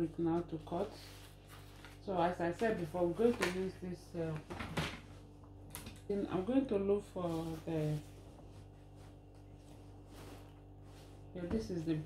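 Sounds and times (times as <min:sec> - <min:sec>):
fabric rustling and sliding: 0:07.2 - 0:11.8.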